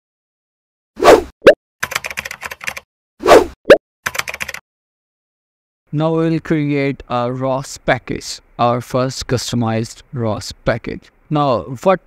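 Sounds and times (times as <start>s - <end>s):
rapid typing-like clicks: 1.8s - 2.8s, 4.1s - 4.6s.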